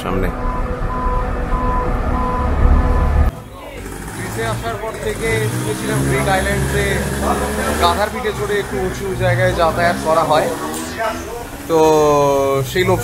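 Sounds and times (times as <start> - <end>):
people talking: 0.0 - 0.4, 3.3 - 13.0
strong low rumble: 0.0 - 3.3.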